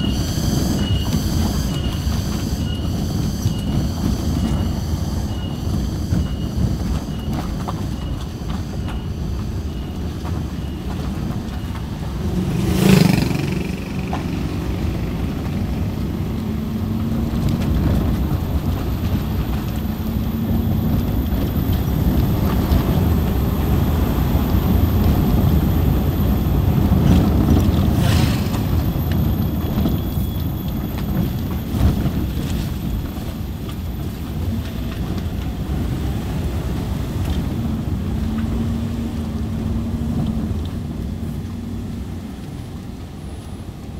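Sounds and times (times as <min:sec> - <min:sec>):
car engine from inside cabin: 0:11.0 - 0:27.9.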